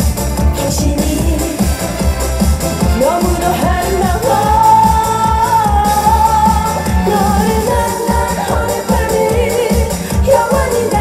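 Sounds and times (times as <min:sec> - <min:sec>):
pop dance backing track: 0:00.0 - 0:11.0
woman singing: 0:00.3 - 0:02.1, 0:02.8 - 0:11.0.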